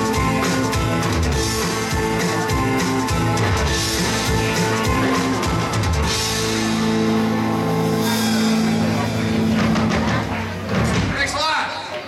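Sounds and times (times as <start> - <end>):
rock band chord: 0.0 - 11.2
audience voices: 0.0 - 12.0.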